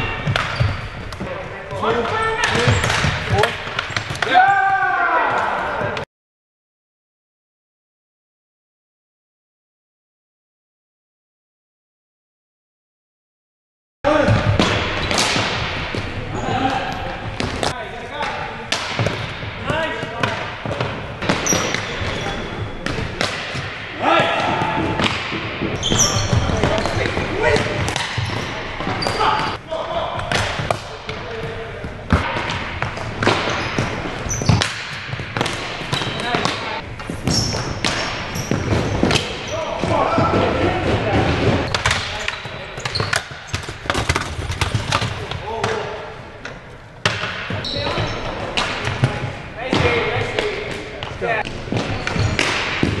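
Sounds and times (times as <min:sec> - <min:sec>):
hockey sticks clacking: 0:00.0 - 0:04.4, 0:14.1 - 0:29.6, 0:30.2 - 0:53.0
players shouting: 0:04.2 - 0:06.0, 0:23.2 - 0:30.6.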